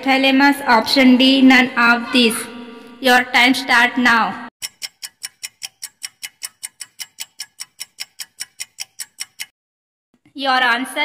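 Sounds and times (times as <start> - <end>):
fast clock ticking: 4.6 - 9.6.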